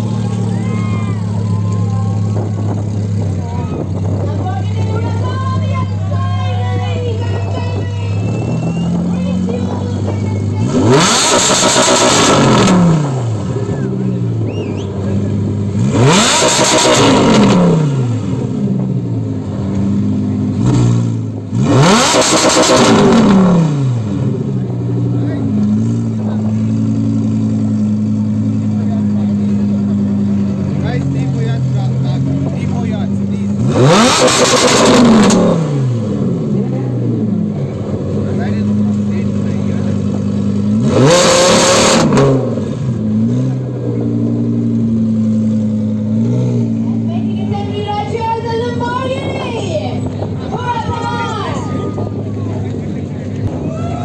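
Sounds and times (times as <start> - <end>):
car engine revving: 0.0 - 53.8
car engine idling: 0.0 - 54.0.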